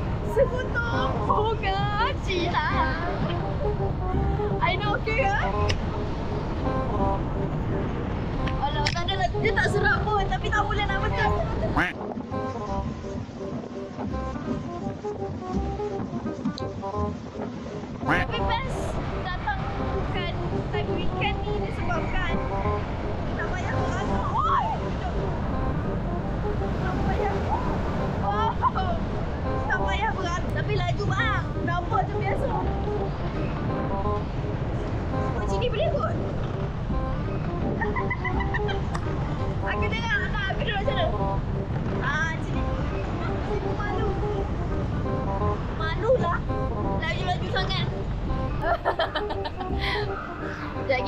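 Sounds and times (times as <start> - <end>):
faint background music: 0.0 - 51.0
ride low rumble: 0.0 - 51.0
wind buffeting microphone: 0.0 - 51.0
woman's voice: 0.3 - 3.2, 8.6 - 11.5, 39.6 - 41.2.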